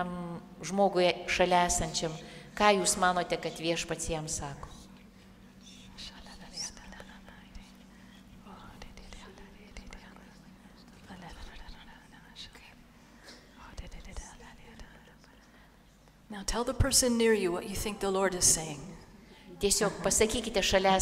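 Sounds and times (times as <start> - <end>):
steady low hum: 0.0 - 21.0
congregation whispering quietly: 4.4 - 16.3.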